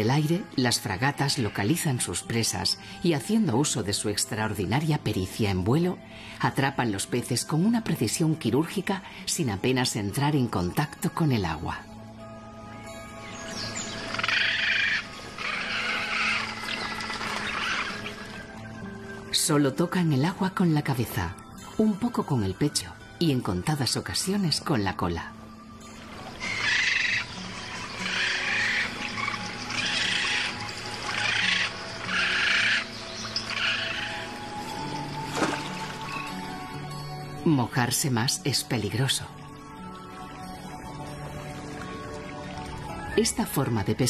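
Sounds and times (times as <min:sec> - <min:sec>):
background music low notes: 0:00.0 - 0:44.0
birds chattering: 0:13.2 - 0:18.8, 0:26.4 - 0:35.2.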